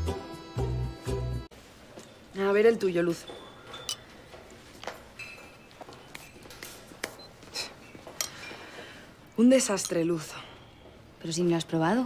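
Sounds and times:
spoon clinking against ceramic bowl: 3.7 - 4.1.

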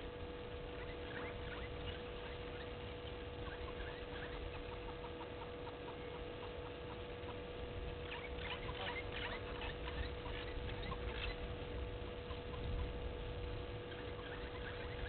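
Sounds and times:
small birds chirping: 0.0 - 15.0
steady electrical hum: 0.0 - 15.0.

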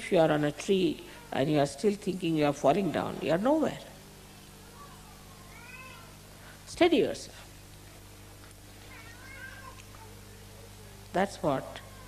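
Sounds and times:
low electrical hum with hiss: 0.0 - 12.0.

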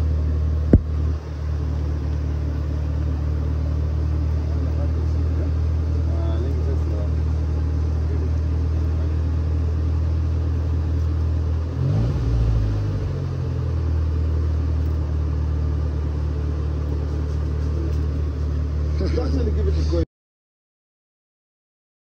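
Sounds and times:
car engine idling and revving: 0.0 - 20.0.

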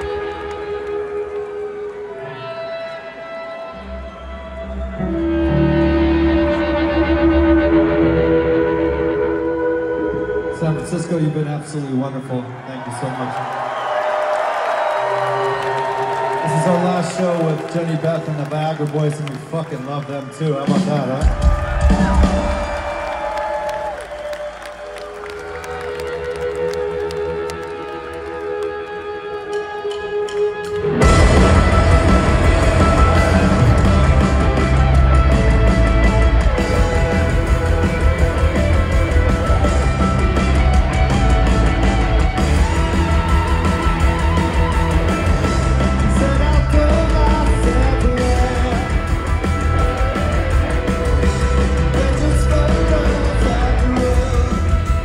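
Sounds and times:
crowd clapping and cheering: 0.0 - 7.0, 10.5 - 55.0
sustained electric guitar notes: 0.0 - 11.7, 24.9 - 55.0
live rock band ringing chord: 30.8 - 55.0.

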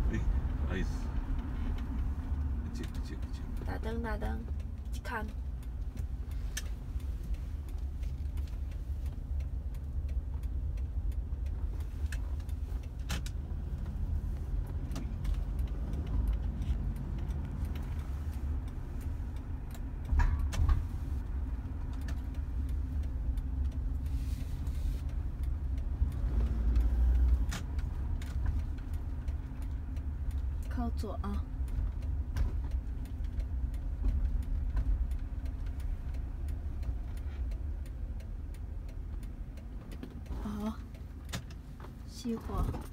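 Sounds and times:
car engine and tyre rumble: 0.0 - 42.9
faint irregular clicks: 0.1 - 42.9.

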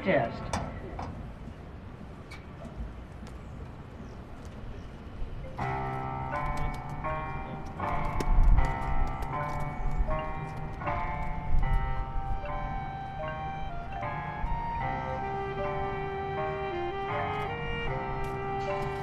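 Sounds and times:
marching band chords: 5.6 - 19.0.

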